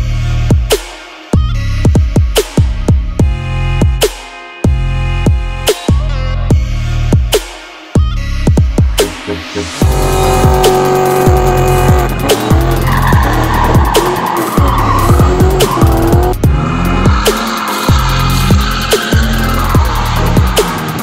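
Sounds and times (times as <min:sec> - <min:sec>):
electronic music with heavy bass: 0:00.0 - 0:21.0
car tyres squealing: 0:09.8 - 0:21.0.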